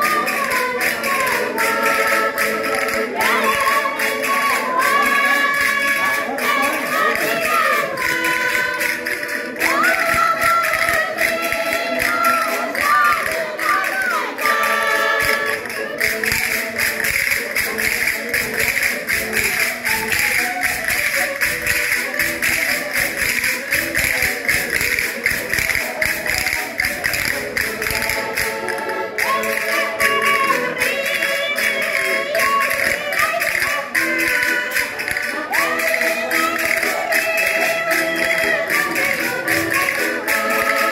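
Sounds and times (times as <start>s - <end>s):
women singing: 0.0s - 17.3s, 25.5s - 40.9s
button accordion: 0.0s - 40.9s
castanets clacking: 0.0s - 40.9s.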